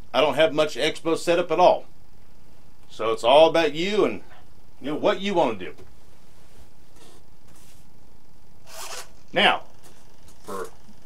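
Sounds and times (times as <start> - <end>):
room hiss: 0.0 - 11.0
soft rustle: 5.9 - 8.0.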